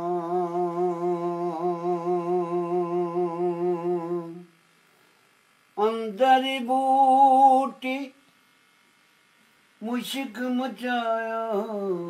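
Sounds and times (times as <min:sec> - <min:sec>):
man singing long note with vibrato: 0:00.0 - 0:04.5.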